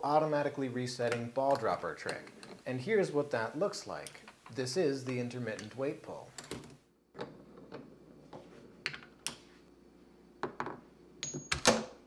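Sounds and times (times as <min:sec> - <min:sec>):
balls rolling clicking and knocking: 0:06.4 - 0:09.4.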